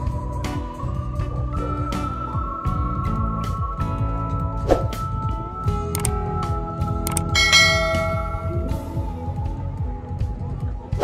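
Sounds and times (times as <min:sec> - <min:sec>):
background music: 0:00.0 - 0:11.0
mouse click: 0:07.1 - 0:07.3
bright bell chime: 0:07.1 - 0:09.0.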